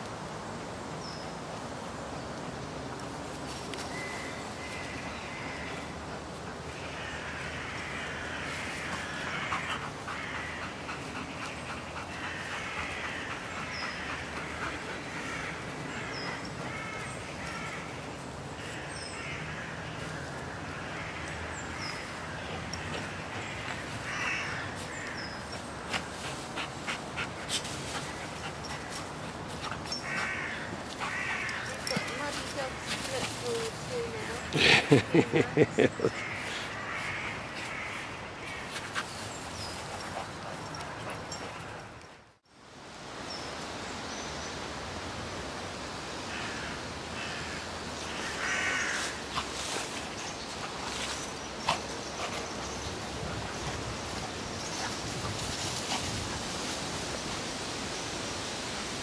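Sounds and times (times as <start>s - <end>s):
outdoor background noise: 0.0s - 59.0s
person laughing: 34.5s - 36.2s.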